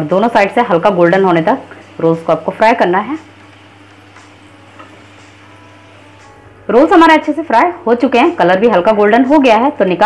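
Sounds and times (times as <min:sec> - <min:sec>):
food sizzling in hot oil: 0:00.0 - 0:07.0.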